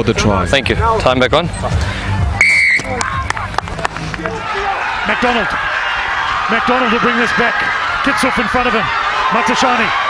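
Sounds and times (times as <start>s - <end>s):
referee's whistle blast: 2.4s - 3.0s.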